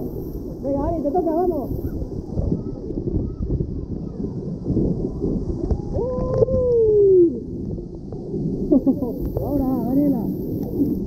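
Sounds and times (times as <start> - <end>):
water rushing inside slide tube: 0.0 - 11.0.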